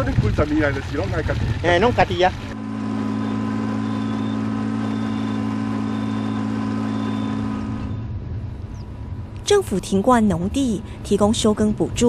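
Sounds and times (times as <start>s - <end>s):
small engine running steadily: 0.0s - 9.5s.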